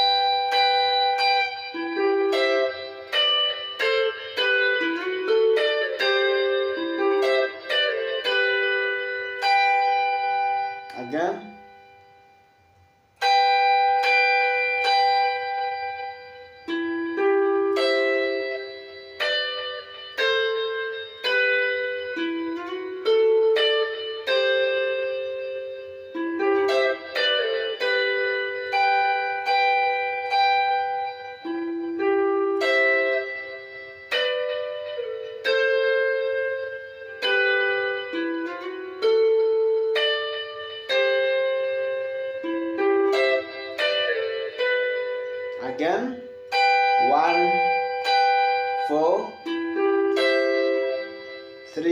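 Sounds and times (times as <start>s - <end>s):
clean electric guitar melody: 0.0s - 51.9s.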